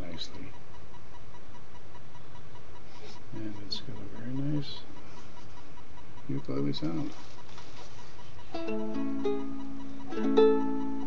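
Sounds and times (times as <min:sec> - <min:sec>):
webcam microphone hiss: 0:00.0 - 0:11.0.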